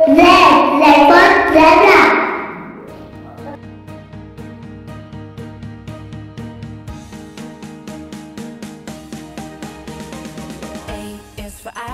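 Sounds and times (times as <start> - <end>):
music with light steady beat: 2.6 - 11.9.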